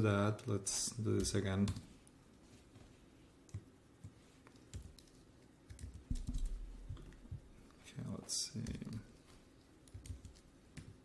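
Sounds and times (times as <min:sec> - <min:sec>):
typing on computer keyboard: 0:04.5 - 0:07.2, 0:09.8 - 0:11.0.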